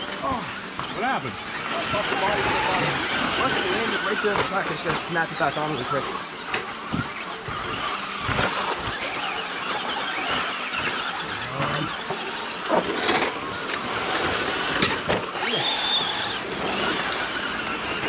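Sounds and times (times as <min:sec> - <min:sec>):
electric toy car motors whining: 0:00.0 - 0:18.0
steady high whine: 0:00.0 - 0:18.0
tyres scrabbling on dirt: 0:00.0 - 0:18.0.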